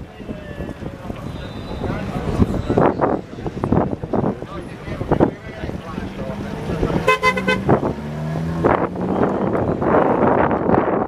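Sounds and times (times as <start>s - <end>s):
car horn toot: 7.0s - 7.8s.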